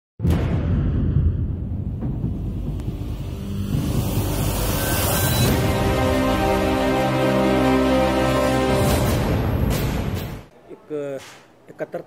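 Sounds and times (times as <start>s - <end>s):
intro music: 0.2s - 10.4s.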